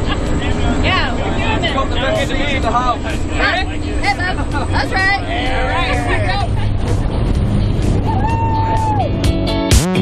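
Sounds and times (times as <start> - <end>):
voices: 0.0 - 7.4.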